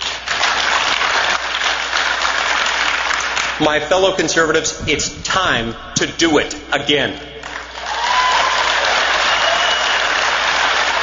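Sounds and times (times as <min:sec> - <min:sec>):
large audience applauding: 0:00.0 - 0:03.6, 0:07.4 - 0:11.0.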